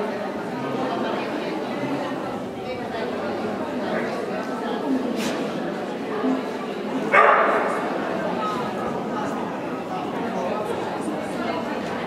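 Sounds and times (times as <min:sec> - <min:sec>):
crowd chatter: 0:00.0 - 0:12.0
dog barking: 0:07.1 - 0:07.8.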